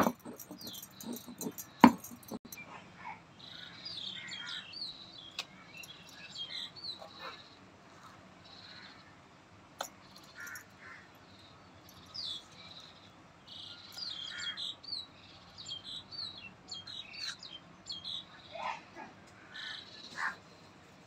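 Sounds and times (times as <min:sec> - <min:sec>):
birds chirping: 0:00.0 - 0:20.7.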